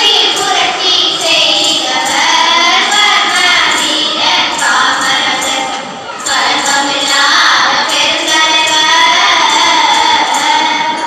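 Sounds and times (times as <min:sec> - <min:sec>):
girls singing in chorus: 0:00.0 - 0:11.0.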